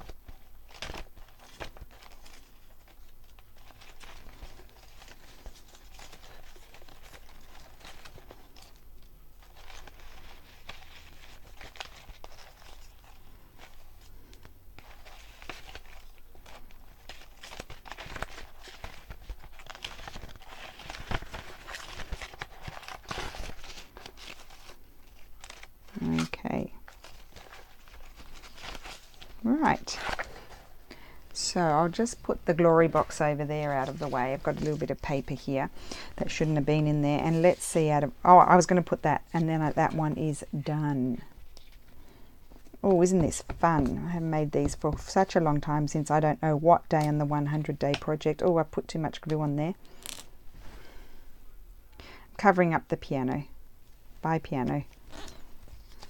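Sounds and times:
paper rustling and crinkling: 0.0s - 40.6s, 41.2s - 46.1s, 54.7s - 56.0s.

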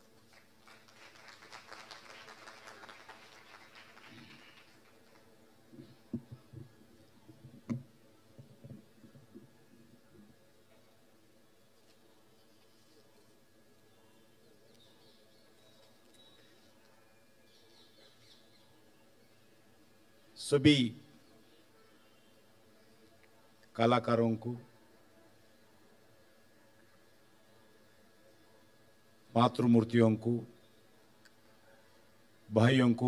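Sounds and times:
faint audience applause: 0.0s - 5.8s
faint high chirps: 13.8s - 20.4s.

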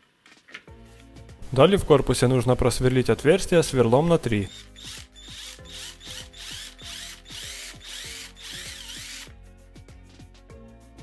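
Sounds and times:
cordless drill drilling plastic: 4.5s - 9.3s.

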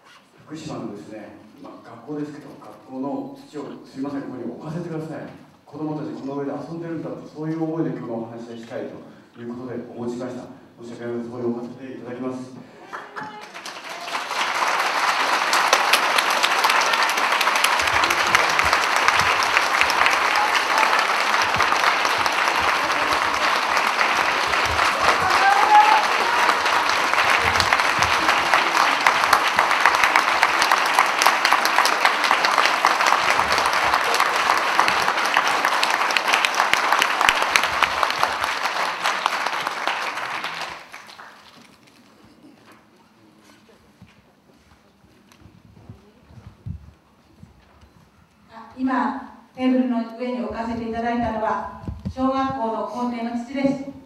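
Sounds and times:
people applauding: 12.8s - 42.4s.

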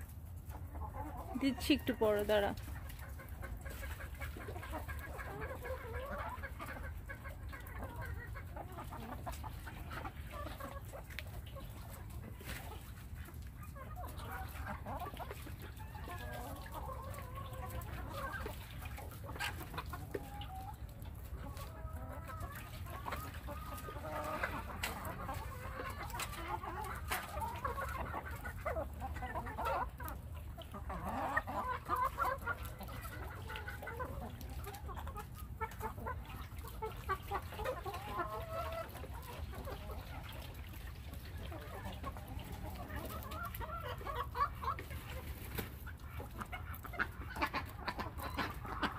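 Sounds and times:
hens clucking: 0.0s - 48.9s.

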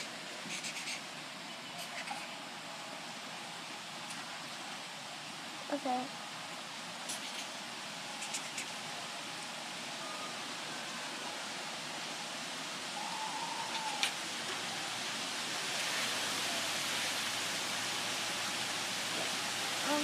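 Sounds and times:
outdoor background hiss: 0.0s - 20.0s.

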